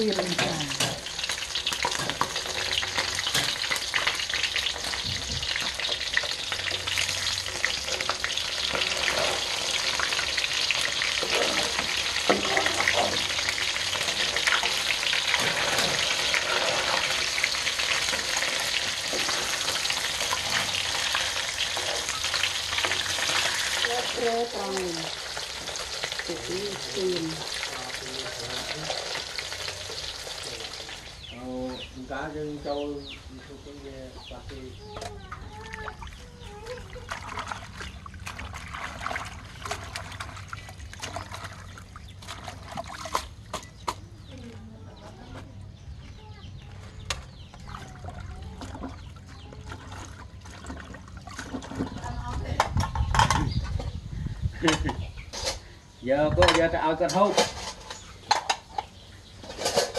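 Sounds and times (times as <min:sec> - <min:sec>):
fish sizzling in oil: 0:00.0 - 0:31.4
metal spatula scraping wok: 0:07.8 - 0:10.0, 0:11.2 - 0:13.3, 0:13.9 - 0:21.1, 0:59.4 - 0:59.9.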